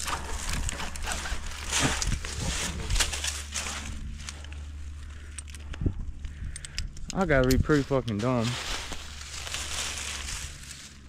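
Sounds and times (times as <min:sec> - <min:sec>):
gear clicks: 0:00.0 - 0:08.3
climbing rope rustling against bark: 0:00.0 - 0:11.0
steady low rumble: 0:00.0 - 0:11.0.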